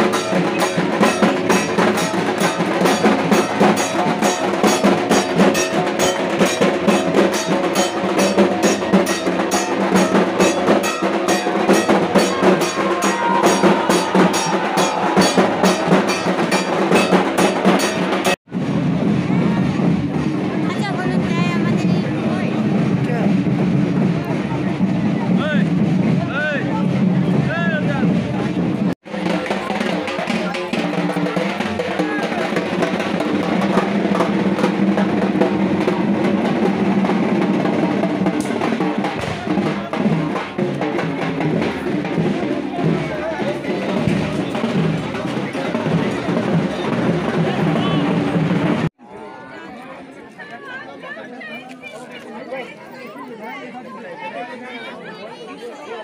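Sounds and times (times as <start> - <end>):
drums beaten fast: 0.0 - 49.0
crowd voices: 0.0 - 56.0.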